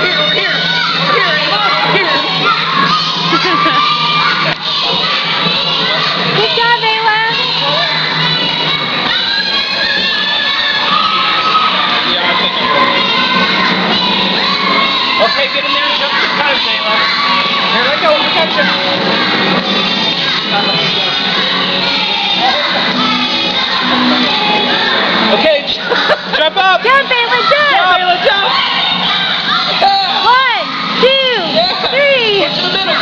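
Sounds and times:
children shouting and cheering: 0.0s - 33.0s.

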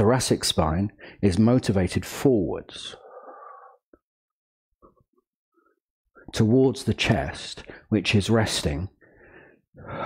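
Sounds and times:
soft breath: 3.0s - 3.8s, 9.0s - 10.0s.

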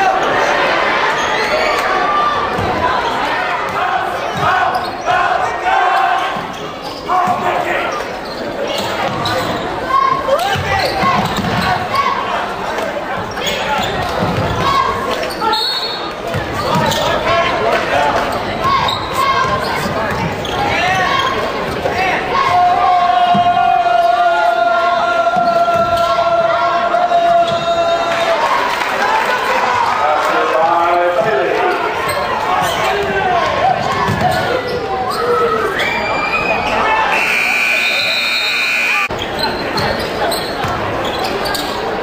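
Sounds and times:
people calling out: 32.0s - 39.2s.

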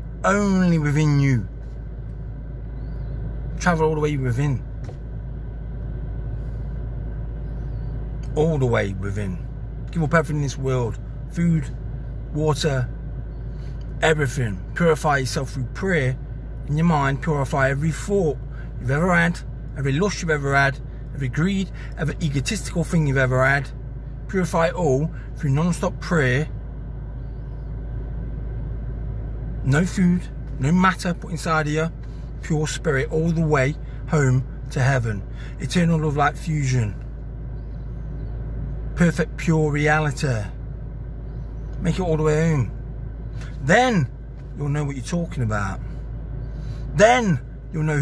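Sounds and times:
low rumble and hum in car cabin: 0.0s - 48.0s.

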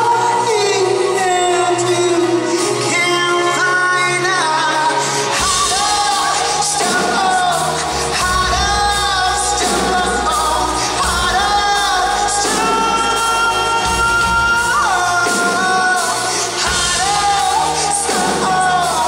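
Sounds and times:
drums: 0.0s - 19.0s
keyboard: 0.0s - 19.0s
man singing lead vocal: 0.0s - 19.0s.

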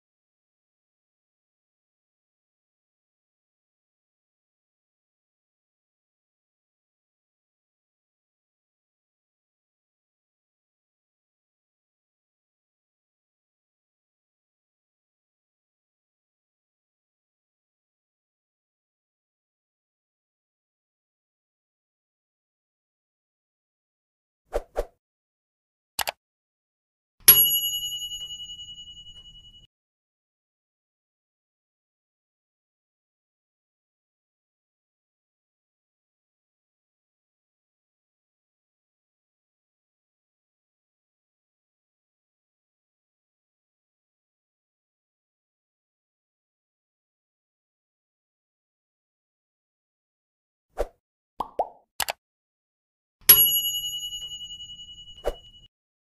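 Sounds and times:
bright metallic notification ding: 27.3s - 29.6s, 53.3s - 55.6s.

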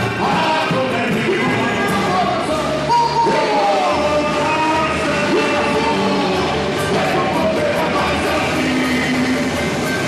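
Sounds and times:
men singing into microphones: 0.0s - 10.0s
samba band with cavaquinho: 0.0s - 10.0s.

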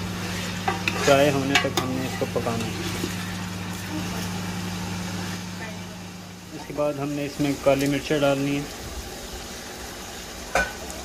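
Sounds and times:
chicken sizzling in oil: 0.0s - 11.0s.

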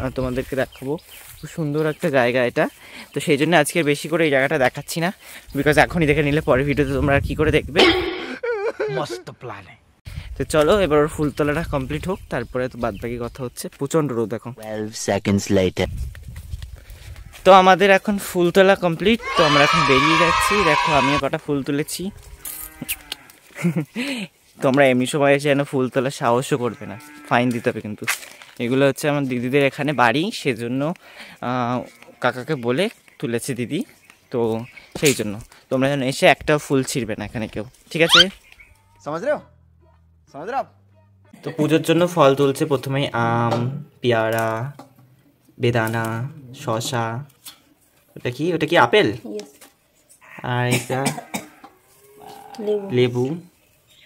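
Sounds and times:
man speaking: 8.9s - 9.8s, 14.6s - 15.9s, 38.0s - 38.4s
person speaking: 38.1s - 38.4s
faint animal call: 38.1s - 39.1s.

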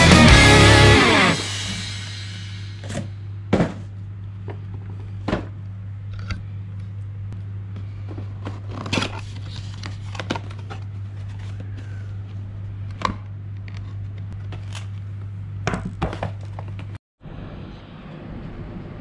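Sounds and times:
steady low hum: 0.3s - 15.8s.

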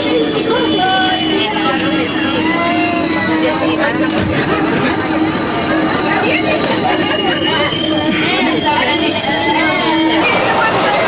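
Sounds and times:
passengers' voices: 0.0s - 11.0s
thin whining tones: 0.0s - 11.0s
train rumbling through tunnel: 0.0s - 11.0s.

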